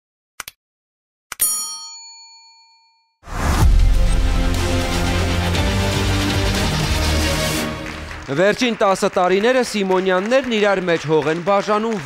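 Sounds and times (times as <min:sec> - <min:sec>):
bright bell-like ding: 0:01.4 - 0:03.1.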